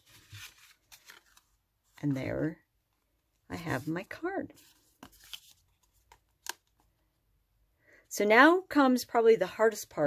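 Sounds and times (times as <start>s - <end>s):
card stock rustling and brushing: 0.0s - 2.1s, 3.6s - 6.2s.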